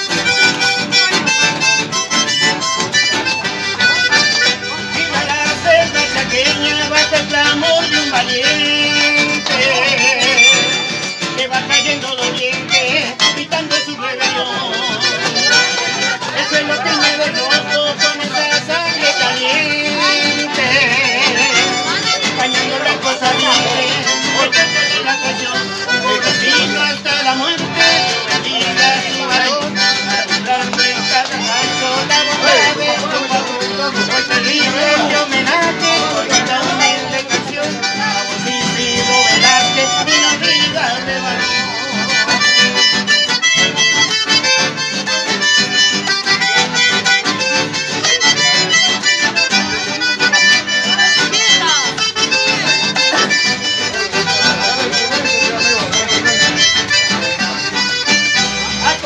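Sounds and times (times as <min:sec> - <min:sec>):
acoustic guitar strumming: 0:00.0 - 0:59.0
piano accordion melody: 0:00.0 - 0:59.0.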